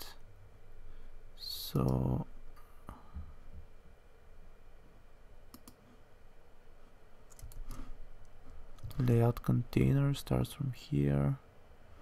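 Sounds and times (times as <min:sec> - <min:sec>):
computer mouse clicks: 0:05.5 - 0:05.8, 0:07.3 - 0:07.9.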